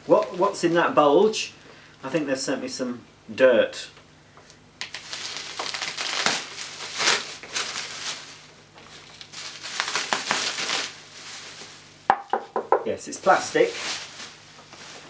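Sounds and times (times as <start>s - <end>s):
bubble wrap crinkling: 0.0s - 1.0s, 4.8s - 12.2s, 13.2s - 15.0s.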